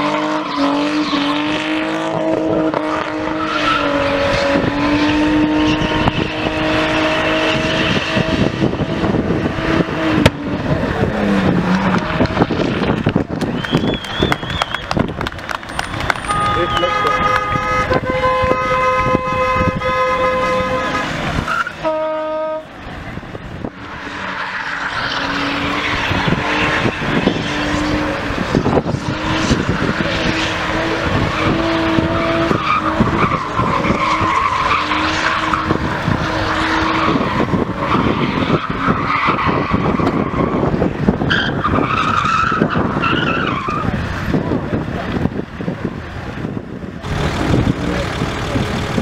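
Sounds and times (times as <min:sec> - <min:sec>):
car engine revving high: 0:00.0 - 0:45.5, 0:46.4 - 0:49.0
tyres skidding and squealing: 0:00.0 - 0:49.0.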